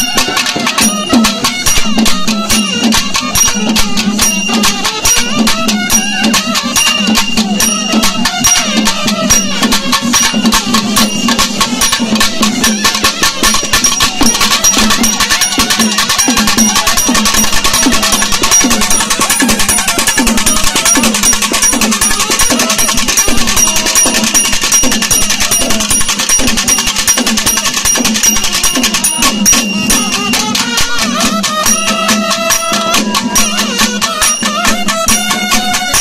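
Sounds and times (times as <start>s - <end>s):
drums beating rapid rhythm: 0.0s - 36.0s
reedy wind instrument melody: 0.0s - 36.0s.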